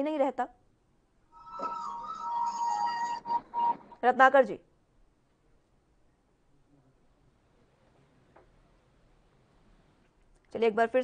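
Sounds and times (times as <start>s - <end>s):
higher ringing notes: 1.3s - 4.0s.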